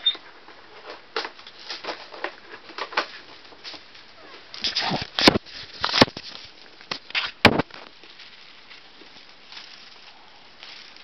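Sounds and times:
plastic packaging crinkling: 0.7s - 11.0s.

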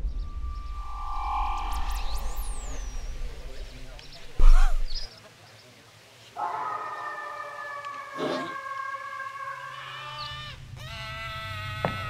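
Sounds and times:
low rumble: 0.0s - 5.1s
high held wail: 6.4s - 10.4s.

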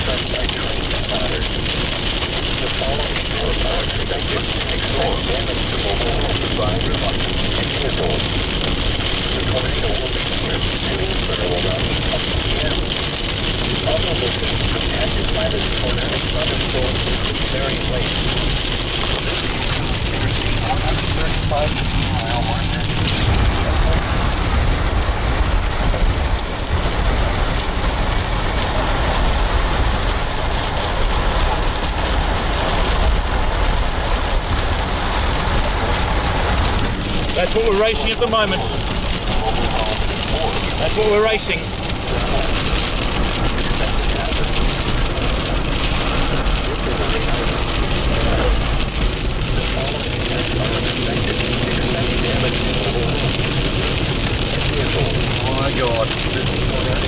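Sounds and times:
rain on a moving vehicle: 0.0s - 57.0s
road noise: 0.0s - 57.0s.

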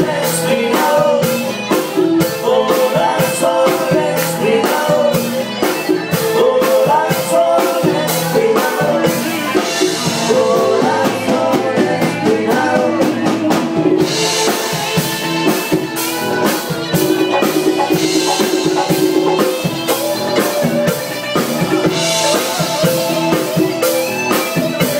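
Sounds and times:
drum kit beat: 0.0s - 24.9s
latin band playing: 0.0s - 24.9s.

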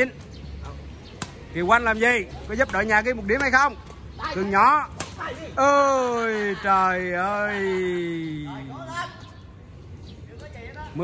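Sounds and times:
low outdoor background: 0.0s - 11.0s.

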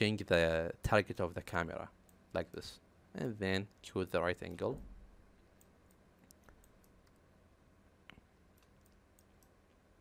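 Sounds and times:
computer keys and mouse clicks: 5.4s - 7.2s, 8.0s - 9.8s.

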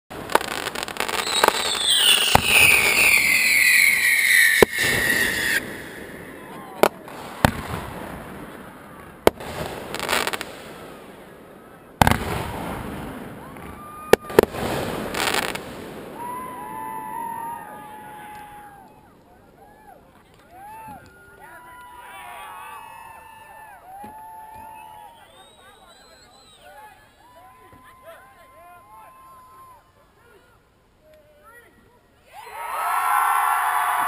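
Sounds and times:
firework falling whistle: 0.5s - 7.8s, 24.0s - 26.8s.

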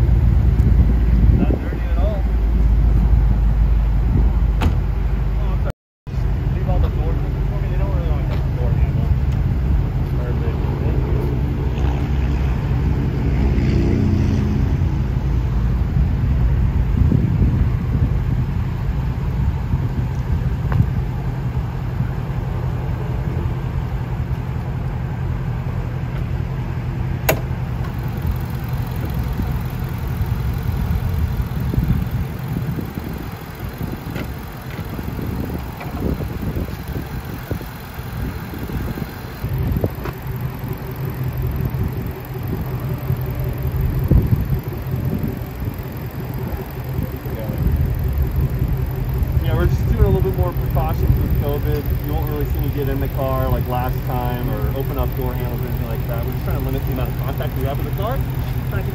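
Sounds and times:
car engine idling: 0.0s - 58.9s
sharp click: 27.3s - 28.0s.

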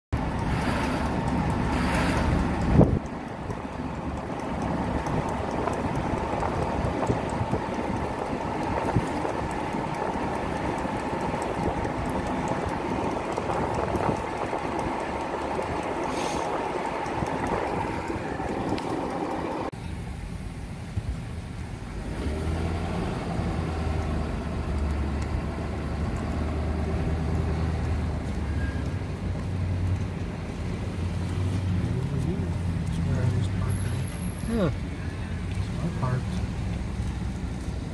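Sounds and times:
car engine and road noise: 0.1s - 37.9s.

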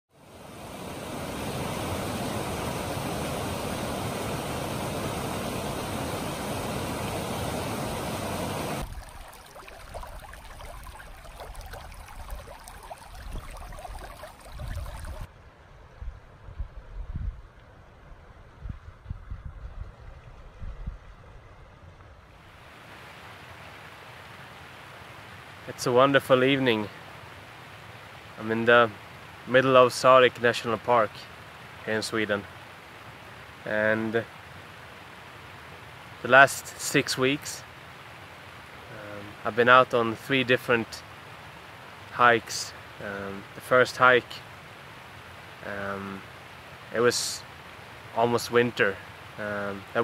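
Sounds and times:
stream rushing: 0.1s - 15.3s, 22.4s - 50.0s
faint steady hiss: 0.2s - 16.1s, 22.0s - 50.0s.

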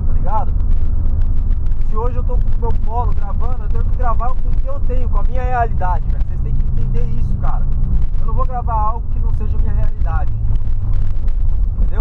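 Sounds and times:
man's voice: 0.0s - 0.5s, 1.9s - 10.4s
car engine drone: 0.0s - 12.0s
road rumble: 0.0s - 12.0s.

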